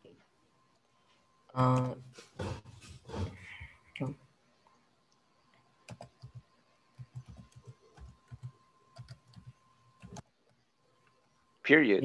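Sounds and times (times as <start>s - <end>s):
keyboard keys clicking: 7.0s - 10.2s.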